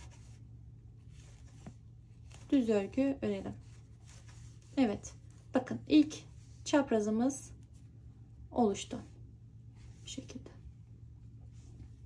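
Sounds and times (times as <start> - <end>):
yarn rubbing on knitting needles: 0.0 - 7.0.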